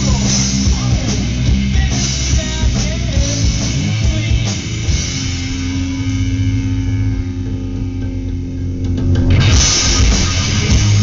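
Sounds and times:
distorted electric guitar and bass drone: 0.0 - 11.0.

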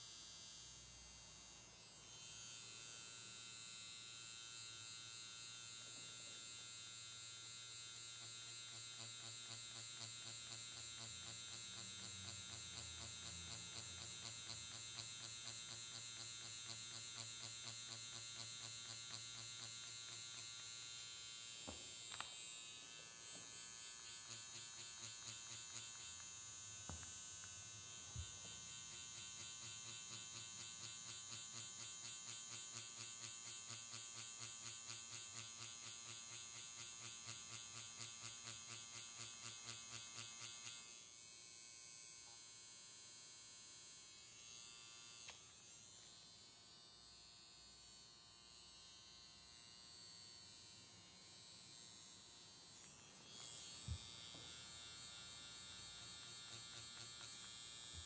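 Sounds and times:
makeup machine high-pitched buzz: 0.0 - 58.0.

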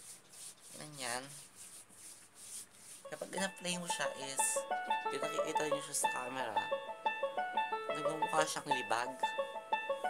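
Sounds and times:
hands rubbing lotion into skin: 0.0 - 3.5.

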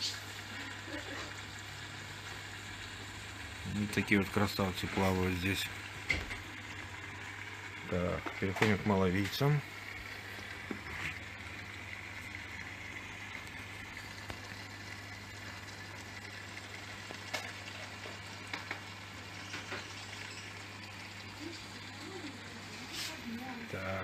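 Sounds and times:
low equipment hum: 0.0 - 24.0
water bubbles fizzing: 0.0 - 24.0.

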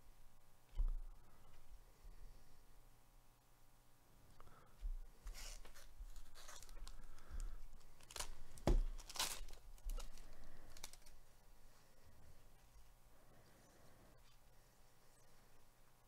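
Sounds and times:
wrapper being torn open: 5.4 - 11.2.

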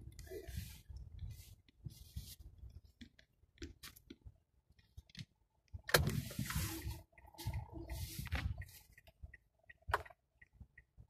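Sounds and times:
road and engine noise in car: 0.0 - 11.0.

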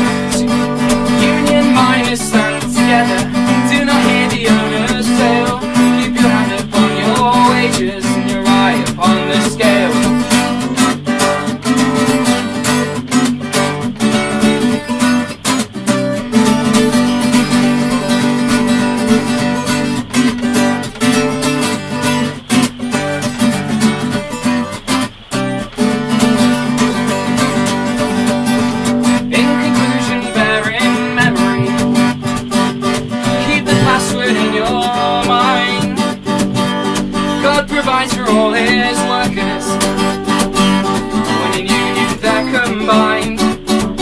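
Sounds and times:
acoustic guitar strumming: 0.0 - 44.0.

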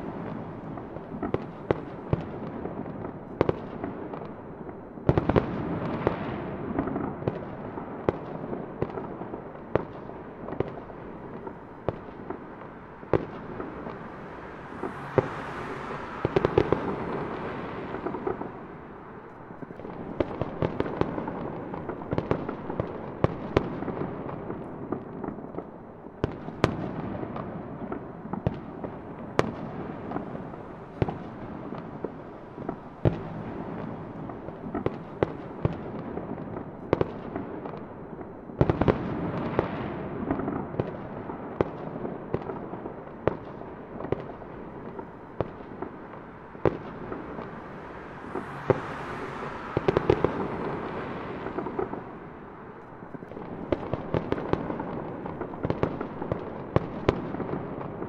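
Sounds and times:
distant fireworks rumble and crackle: 0.0 - 58.0
fireworks bangs: 0.0 - 58.0.

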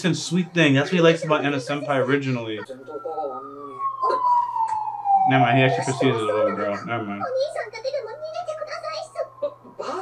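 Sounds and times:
quiet dialogue: 0.0 - 10.0
siren wailing down in pitch: 0.3 - 10.0.

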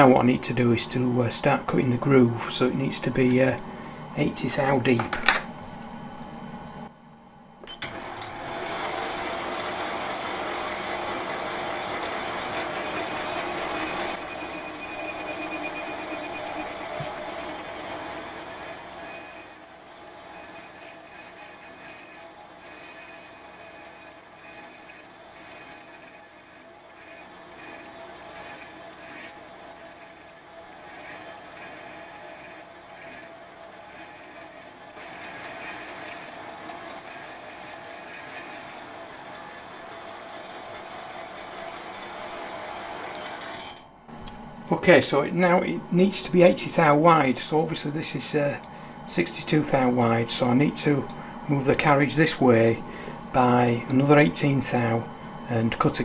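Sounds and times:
metal lathe running: 7.8 - 43.6
high squeal of cutting tool: 12.3 - 39.6.

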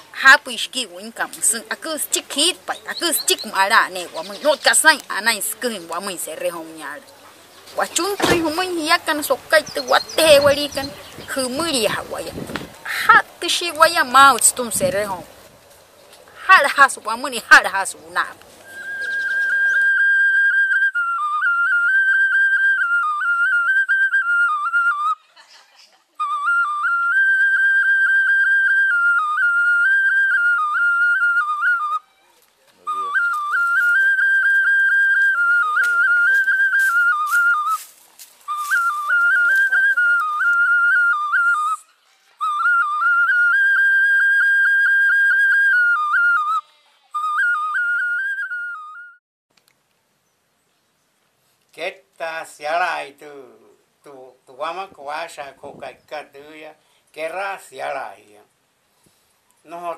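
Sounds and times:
solo flute melody: 18.6 - 25.3, 26.2 - 49.2
breath: 56.8 - 57.1, 58.9 - 59.5.

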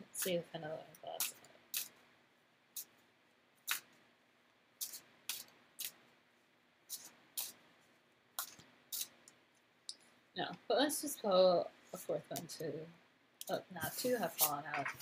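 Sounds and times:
cards snapping while shuffled: 3.7 - 3.9.

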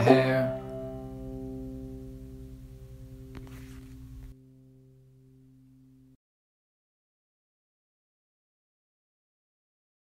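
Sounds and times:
banjo chord ringing: 0.0 - 6.2.

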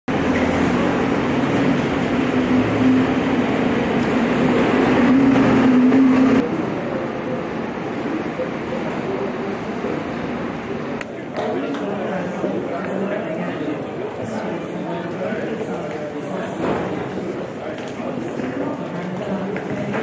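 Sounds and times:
bus engine humming: 0.1 - 11.3
background noise: 0.1 - 20.0.

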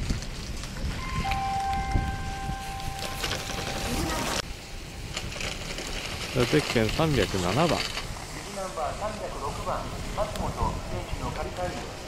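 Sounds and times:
wind buffeting microphone: 0.0 - 12.0
steady ringing tones: 1.0 - 4.4
skis carving across snow: 2.6 - 12.0.

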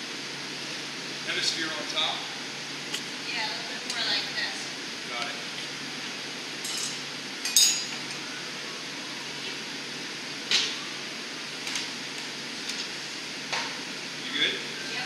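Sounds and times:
metal tools clinking on steel: 6.6 - 8.0.

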